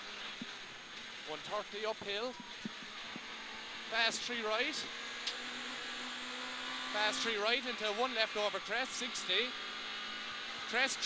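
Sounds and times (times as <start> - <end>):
car engine running hard: 0.0 - 11.0
constant rushing noise: 0.0 - 11.0.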